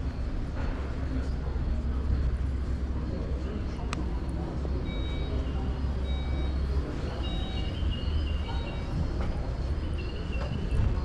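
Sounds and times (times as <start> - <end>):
murmur of distant voices: 0.0 - 11.0.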